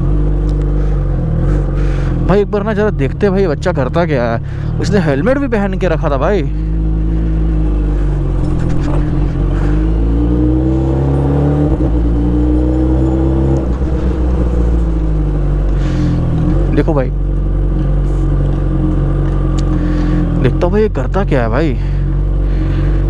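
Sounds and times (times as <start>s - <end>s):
motorcycle engine at low revs: 0.0s - 23.0s.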